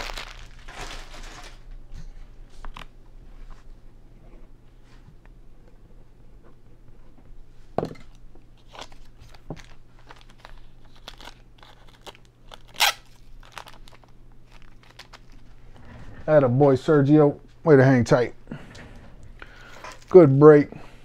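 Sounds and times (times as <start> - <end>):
brief plastic crackle: 0.0 - 1.8, 8.6 - 15.5
plastic sleeves crinkling: 0.0 - 1.8, 8.6 - 16.3, 19.2 - 20.4
steady low hum: 0.0 - 21.0.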